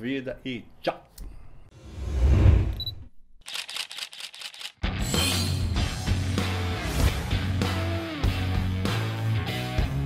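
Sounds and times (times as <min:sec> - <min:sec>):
camera shutter clicking in bursts: 0:03.4 - 0:04.8.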